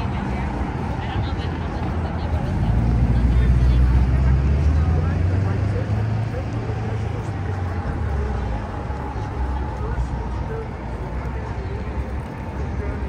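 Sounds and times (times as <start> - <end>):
people talking: 0.0 - 13.0
vehicle engine rumble passing: 0.0 - 13.0.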